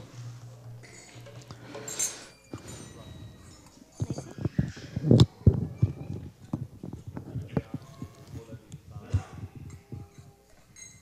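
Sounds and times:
faint voices: 0:01.6 - 0:11.0.

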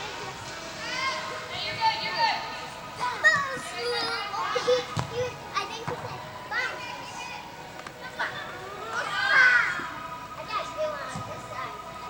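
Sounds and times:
people shouting and calling out: 0:00.0 - 0:11.0
thump: 0:05.0 - 0:05.2.

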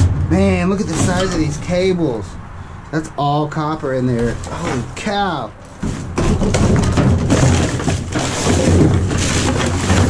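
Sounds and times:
trash clattering and thudding: 0:00.0 - 0:02.0, 0:04.2 - 0:10.0.

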